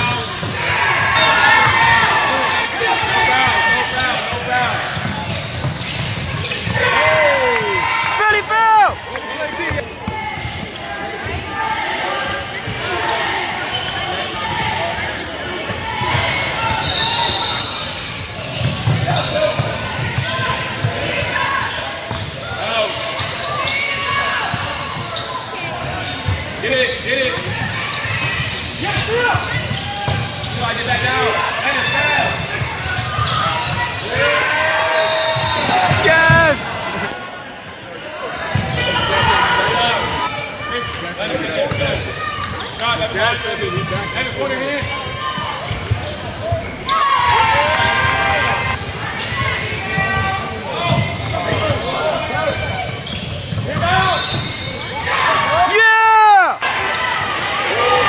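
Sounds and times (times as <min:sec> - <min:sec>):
crowd voices and shouting: 0:00.0 - 0:58.0
basketball bouncing on court: 0:04.2 - 0:06.9, 0:18.4 - 0:22.5, 0:27.3 - 0:30.9, 0:47.7 - 0:51.9, 0:52.6 - 0:54.6.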